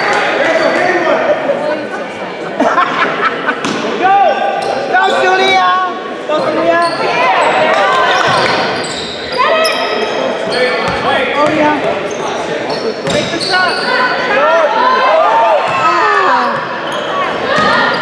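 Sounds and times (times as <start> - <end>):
sneakers squeaking: 4.5 - 5.4, 6.4 - 14.3, 15.6 - 18.0.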